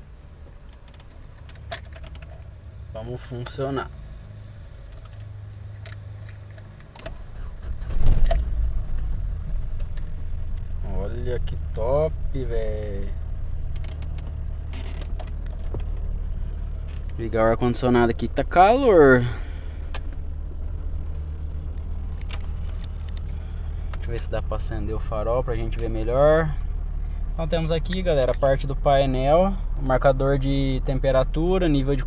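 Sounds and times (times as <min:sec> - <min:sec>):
engine idling: 0:00.0 - 0:32.0.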